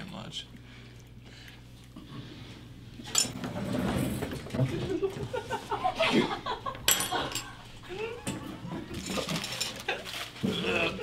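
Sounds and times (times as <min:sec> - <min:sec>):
people laughing and giggling: 0:04.6 - 0:09.1
forks clinking on plates: 0:06.9 - 0:07.6, 0:08.9 - 0:10.0.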